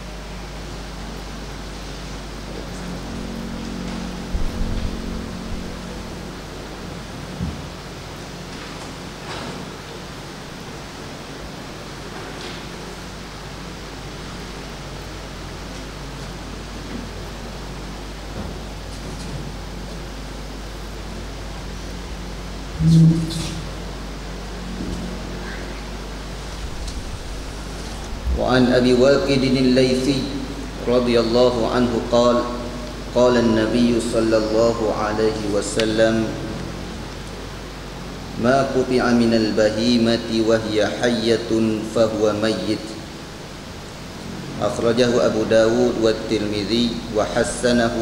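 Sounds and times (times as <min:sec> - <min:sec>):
microphone hiss: 0:00.0 - 0:48.0
low hum: 0:02.1 - 0:08.6, 0:20.4 - 0:34.6.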